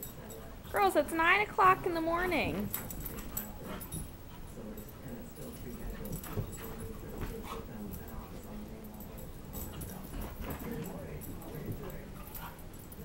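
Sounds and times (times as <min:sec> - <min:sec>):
dogs play growling and whining: 0:02.6 - 0:04.9, 0:09.1 - 0:13.0.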